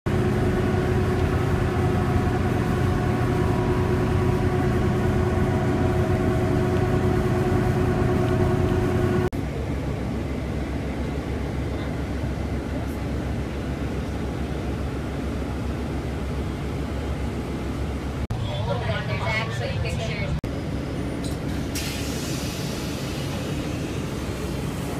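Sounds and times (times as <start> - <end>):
bus running hum with tones: 0.1 - 24.9.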